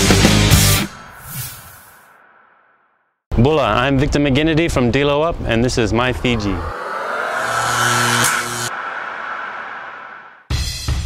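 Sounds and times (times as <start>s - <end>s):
low hum: 5.9s - 10.5s
whoosh sound effect: 6.1s - 10.5s.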